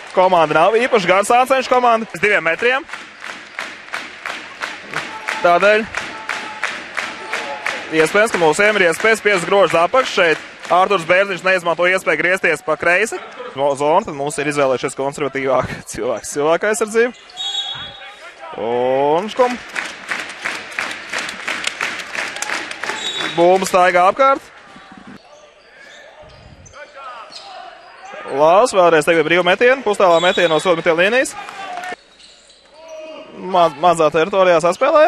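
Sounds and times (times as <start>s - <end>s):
man commentating: 0.0s - 2.9s, 5.0s - 17.2s
faint basketball court noise: 0.0s - 12.6s, 24.4s - 28.7s
man talking: 0.1s - 2.9s, 5.0s - 6.4s, 7.2s - 17.2s, 17.8s - 19.6s, 23.2s - 24.5s, 26.7s - 32.0s, 33.0s - 35.0s.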